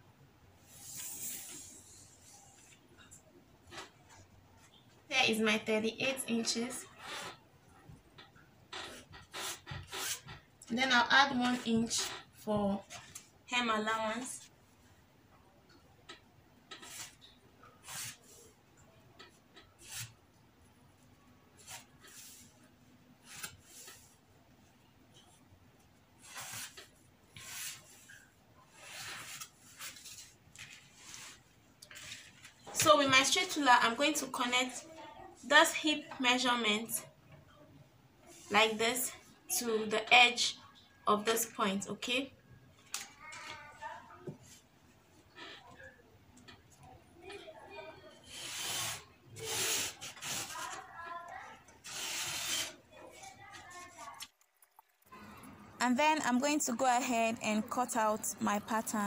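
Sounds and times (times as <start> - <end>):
chalk scraping along ruler: 8.9 - 10.3, 16.8 - 17.2, 17.8 - 18.4, 19.8 - 20.2, 21.6 - 22.6, 26.2 - 30.3, 48.2 - 50.8.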